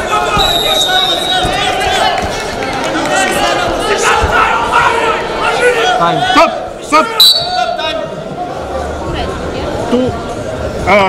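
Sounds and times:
people shouting: 0.0s - 2.4s, 3.1s - 8.0s.

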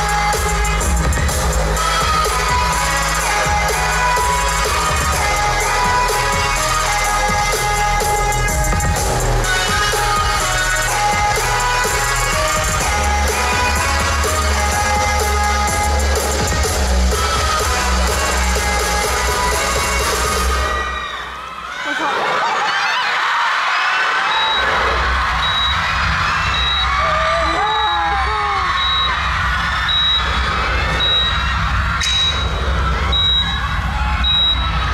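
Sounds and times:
live pop music with heavy bass: 0.0s - 21.4s, 24.2s - 34.9s
crowd screaming and cheering: 0.0s - 34.9s.

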